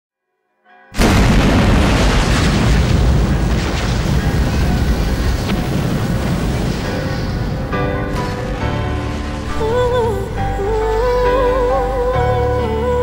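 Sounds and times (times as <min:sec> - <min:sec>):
music: 0:00.2 - 0:01.0, 0:06.3 - 0:13.0
explosion boom: 0:01.0 - 0:10.4.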